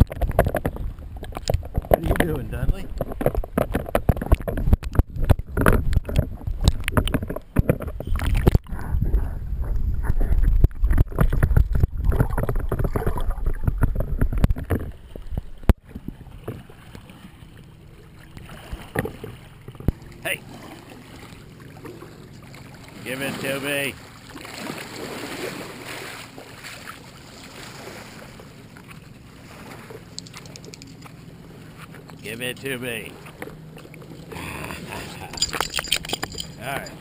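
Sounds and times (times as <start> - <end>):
water sloshing and splashing: 0.0 - 37.0
lapping shallow water: 5.6 - 37.0.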